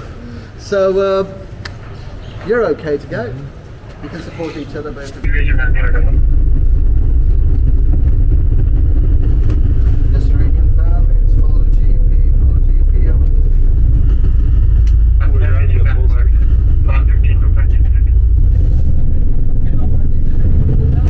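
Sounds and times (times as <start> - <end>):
bus engine and road noise: 5.1 - 21.0
faint voices: 15.0 - 18.4.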